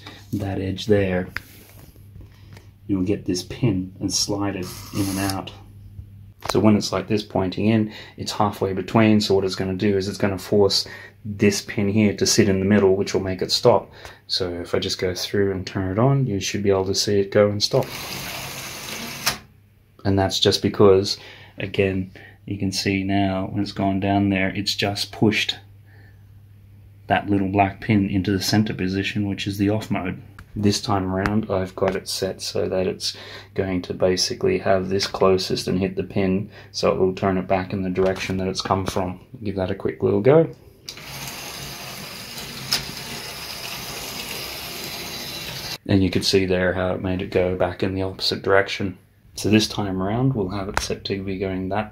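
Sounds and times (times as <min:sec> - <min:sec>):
toy train motor whirring: 0:04.6 - 0:05.3, 0:41.0 - 0:45.8.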